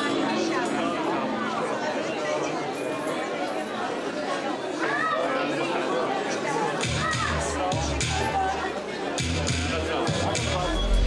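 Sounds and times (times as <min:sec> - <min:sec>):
overlapping chatter of guests: 0:00.0 - 0:11.0.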